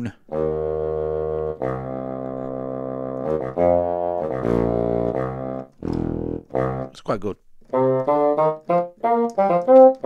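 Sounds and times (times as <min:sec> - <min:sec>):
bassoon playing low notes: 0:00.0 - 0:10.0.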